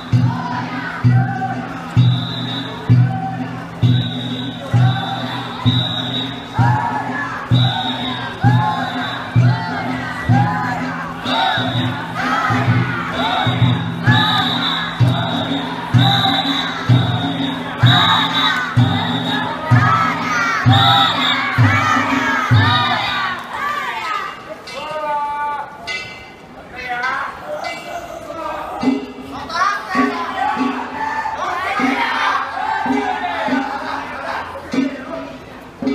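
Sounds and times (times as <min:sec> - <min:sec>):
big drum beating: 0:00.0 - 0:23.3
group chanting: 0:00.0 - 0:23.8, 0:29.9 - 0:35.1
shrill whistle: 0:02.0 - 0:03.0, 0:03.8 - 0:06.9, 0:07.5 - 0:09.7, 0:11.3 - 0:12.3, 0:13.1 - 0:22.0.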